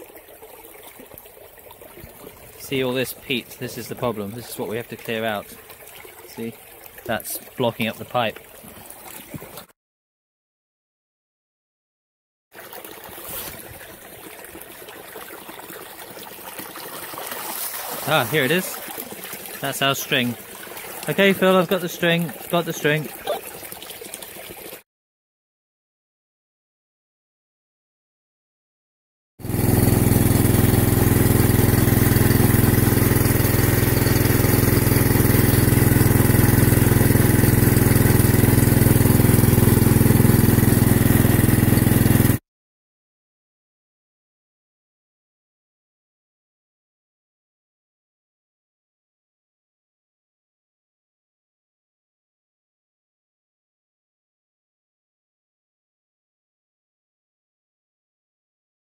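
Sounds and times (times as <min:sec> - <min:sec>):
water jetting and splashing into stream: 0:00.0 - 0:09.7, 0:12.6 - 0:24.8, 0:29.4 - 0:42.4
small petrol pump engine running: 0:29.4 - 0:42.4.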